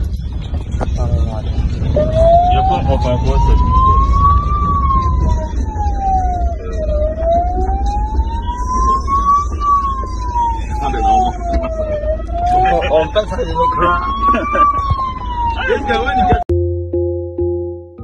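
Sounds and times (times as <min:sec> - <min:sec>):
vehicle cabin low rumble: 0:00.0 - 0:16.6
police siren wailing: 0:00.5 - 0:16.5.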